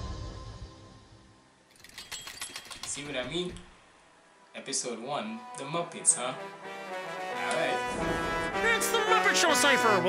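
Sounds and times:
background music: 0:00.0 - 0:01.6, 0:04.1 - 0:10.0.

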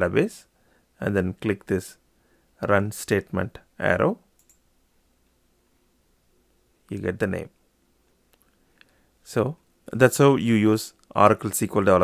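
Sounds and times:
computer mouse click: 0:04.4 - 0:04.7.

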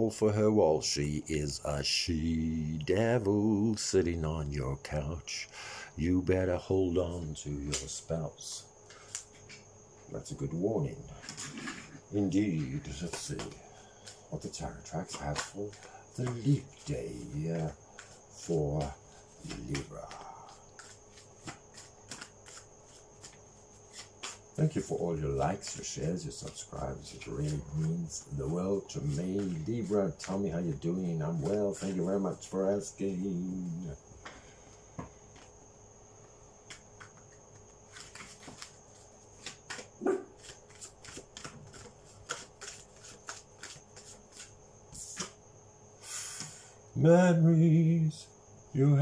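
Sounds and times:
playing cards being shuffled: 0:11.2 - 0:33.8, 0:36.7 - 0:45.4.

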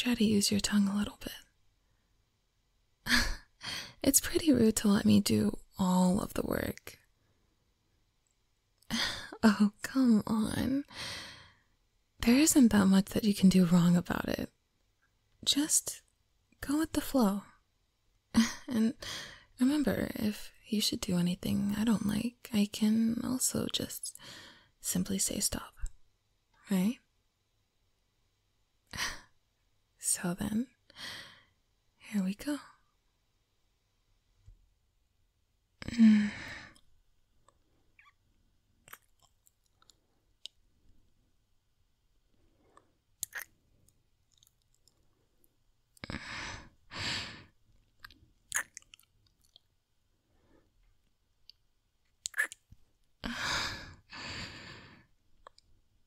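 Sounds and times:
woman breathy sighs: 0:35.8 - 0:36.8, 0:53.2 - 0:55.1
woman kissing lip smacks: 0:43.2 - 0:43.5, 0:52.2 - 0:52.6.

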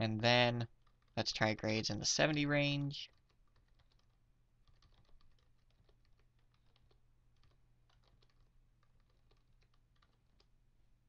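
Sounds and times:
low steady hum: 0:00.0 - 0:11.0
keyboard typing: 0:00.6 - 0:10.6.

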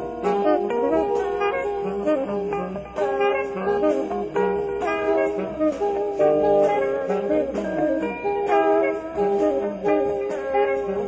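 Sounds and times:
drums: 0:00.0 - 0:11.0
electric guitar: 0:00.0 - 0:11.0
saxophones playing melodies: 0:00.0 - 0:11.0.

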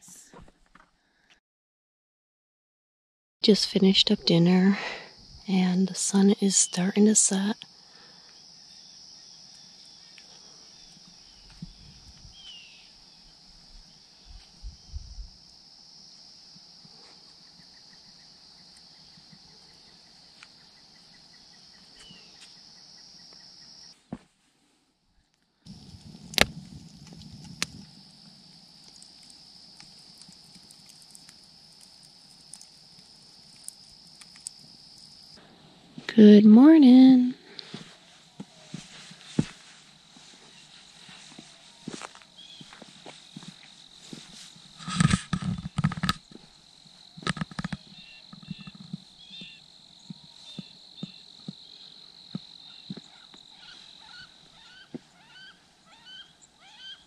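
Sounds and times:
crickets chirring: 0:03.4 - 0:24.0, 0:25.7 - 0:57.0.

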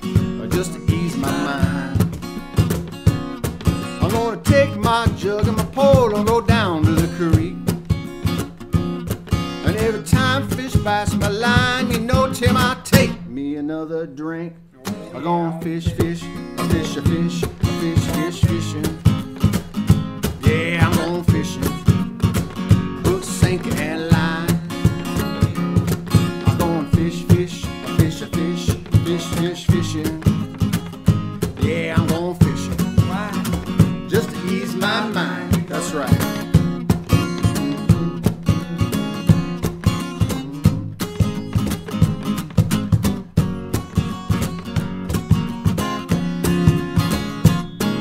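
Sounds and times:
strummed acoustic guitar: 0:00.0 - 0:13.4, 0:14.7 - 0:48.0
harmonica melody: 0:00.7 - 0:02.6.

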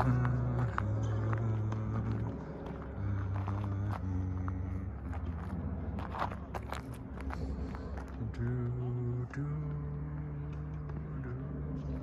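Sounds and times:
low humming: 0:00.0 - 0:12.0.

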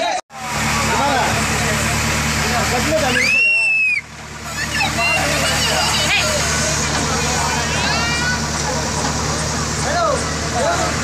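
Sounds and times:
crowd shouting: 0:00.0 - 0:11.0
engine running: 0:00.0 - 0:11.0.

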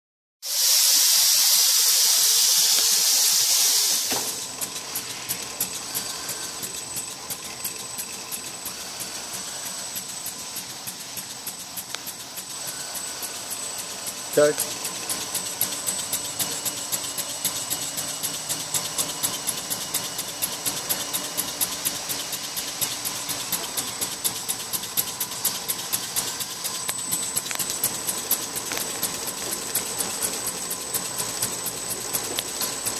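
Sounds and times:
machine high whine: 0:01.7 - 0:32.9
machine fast ticking: 0:04.4 - 0:32.9.

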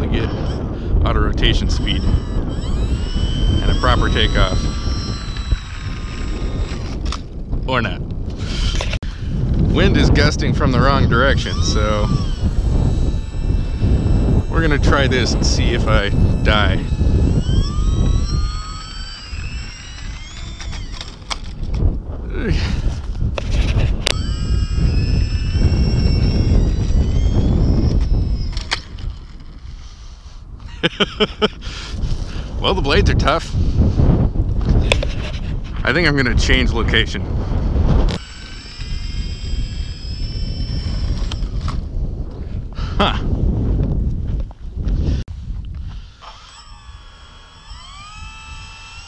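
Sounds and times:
wind rumbling on microphone: 0:00.0 - 0:49.0.

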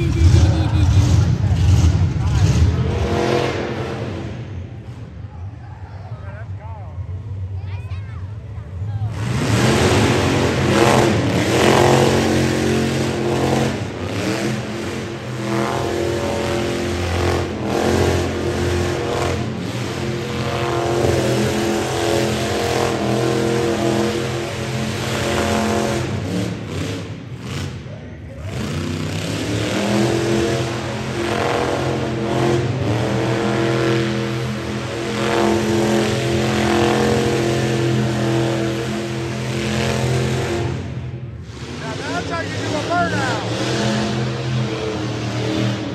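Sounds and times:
engine revving high: 0:00.0 - 0:04.6, 0:09.1 - 0:45.9.

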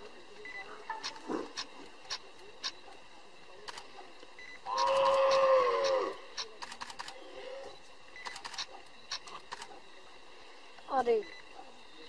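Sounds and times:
drawn-out animal cry: 0:04.7 - 0:06.5.

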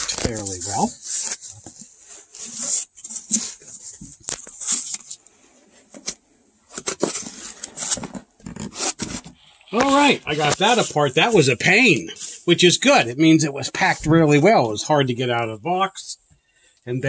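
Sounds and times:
foam and plastic wrap crinkling: 0:00.0 - 0:13.0.

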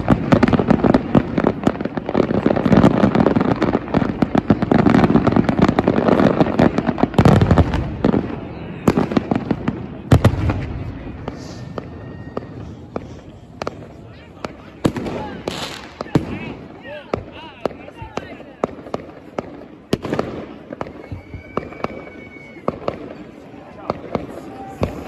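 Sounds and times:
firework bangs and cracks: 0:00.0 - 0:25.0
rumble of distant fireworks: 0:00.0 - 0:25.0.

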